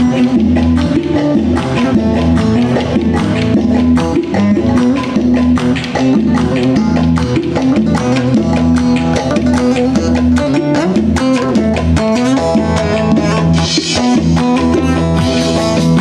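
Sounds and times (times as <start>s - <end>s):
fast clicking percussion beat: 0.0s - 16.0s
plucked string instrument: 0.0s - 16.0s.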